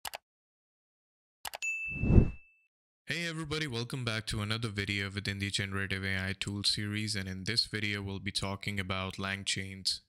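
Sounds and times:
bright bell ding: 0:01.6 - 0:02.6
low swoosh: 0:02.0 - 0:02.4.

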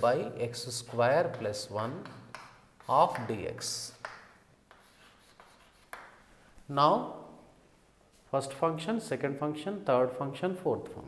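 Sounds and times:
chalk scratching on blackboard: 0:00.7 - 0:06.2
chalk tapping on blackboard: 0:00.8 - 0:06.3.

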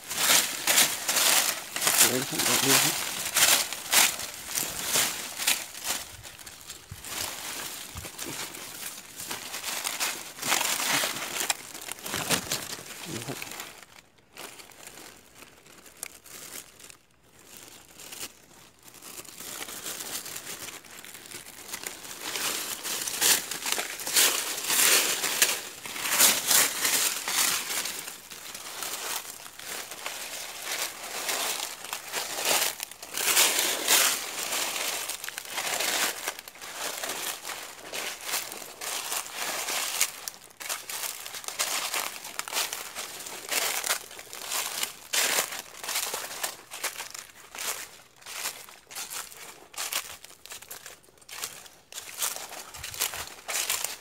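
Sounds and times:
dry leaves rustling: 0:00.0 - 0:54.0
plastic bag crinkling: 0:00.0 - 0:54.0.

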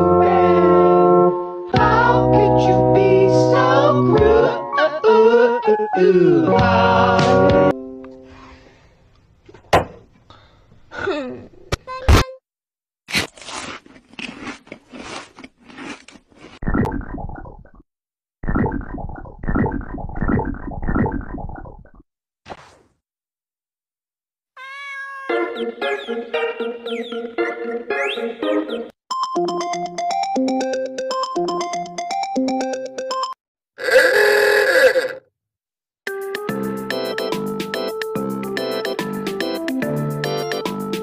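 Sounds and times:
synth keyboard tune: 0:01.1 - 0:08.3, 0:25.3 - 0:33.4, 0:36.1 - 0:41.0
crunchy chewing: 0:13.1 - 0:16.6
harsh groan-like voice effect: 0:33.8 - 0:35.3.

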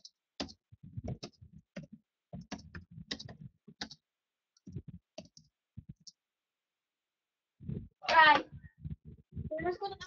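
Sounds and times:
irregular clicks and taps: 0:00.0 - 0:06.3.

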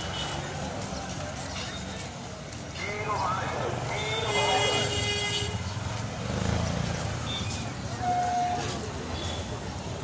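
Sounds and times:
people's voices: 0:00.0 - 0:06.6
motor tricycle engines running: 0:00.0 - 0:10.0
vehicle horn: 0:04.3 - 0:05.6.

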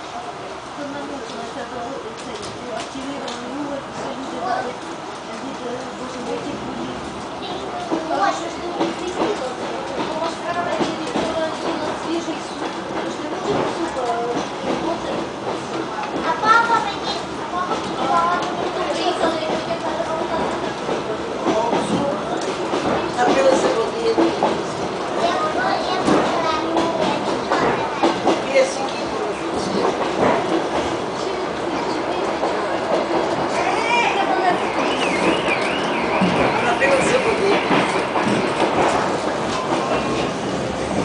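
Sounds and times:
diesel train running: 0:00.0 - 0:41.0
passengers' voices: 0:00.0 - 0:41.0
wheels clicking on rails: 0:00.8 - 0:41.0.

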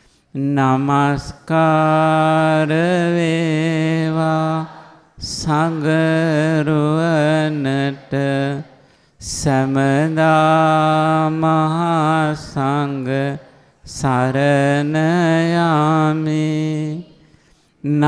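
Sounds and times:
short breaths: 0:00.0 - 0:00.3, 0:08.7 - 0:09.2, 0:17.2 - 0:17.8.

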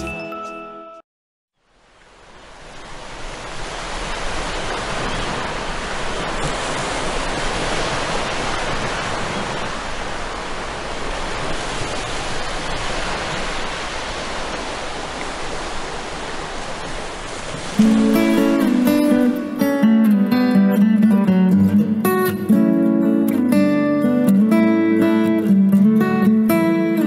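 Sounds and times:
ocean surf on rocky shore: 0:01.8 - 0:20.6.

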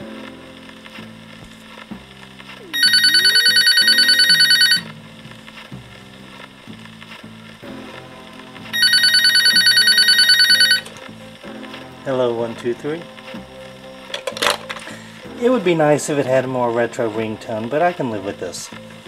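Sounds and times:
electronic trilling ringtone: 0:02.7 - 0:04.9, 0:08.8 - 0:10.9.

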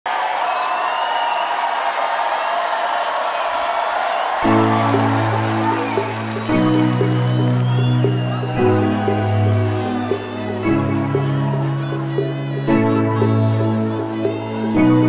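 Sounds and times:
large crowd cheering: 0:00.0 - 0:15.0.

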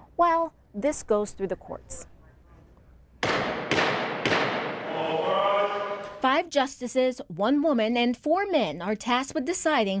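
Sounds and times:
gavel rapping on wood: 0:03.2 - 0:04.9.

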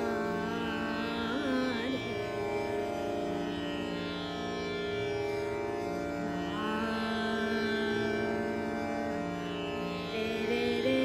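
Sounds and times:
woman singing: 0:00.0 - 0:02.7, 0:10.1 - 0:11.0.

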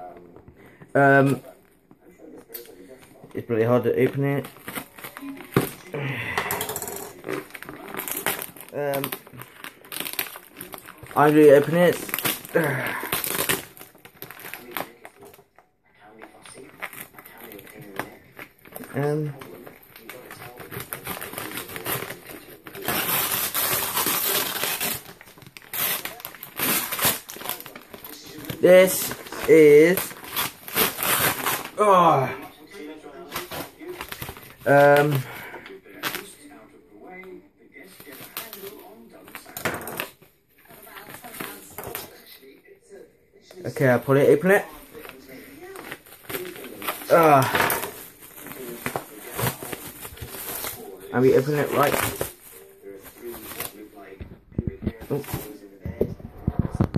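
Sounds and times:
packaging crinkling: 0:04.0 - 0:15.4, 0:16.0 - 0:36.4, 0:37.8 - 0:42.3, 0:43.6 - 0:55.8
packaging tearing: 0:04.0 - 0:15.4, 0:16.2 - 0:36.4, 0:37.8 - 0:42.3, 0:43.7 - 0:54.1.

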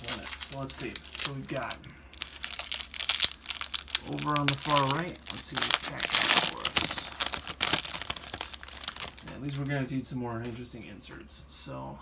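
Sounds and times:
card pack wrapper crinkling: 0:00.0 - 0:09.7.

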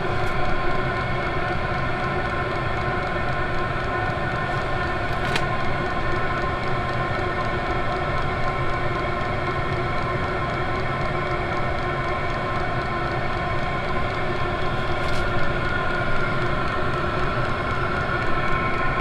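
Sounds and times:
heater blower fan humming: 0:00.0 - 0:19.0.

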